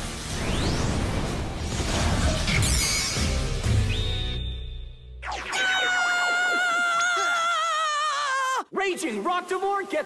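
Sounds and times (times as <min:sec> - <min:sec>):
cartoon boy screaming: 0:05.5 - 0:08.7.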